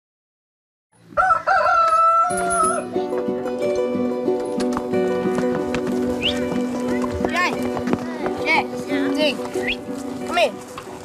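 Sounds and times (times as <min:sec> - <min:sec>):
rooster crowing: 0:01.2 - 0:02.8.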